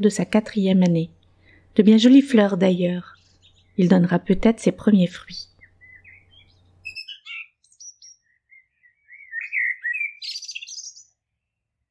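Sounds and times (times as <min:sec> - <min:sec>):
small bird chirping and singing: 0:03.0 - 0:03.8, 0:05.3 - 0:11.6.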